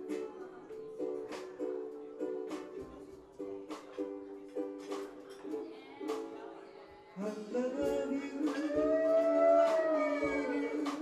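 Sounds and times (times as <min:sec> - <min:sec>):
ukulele and bass chord: 0:00.0 - 0:06.5
wordless vocal call: 0:08.5 - 0:11.0.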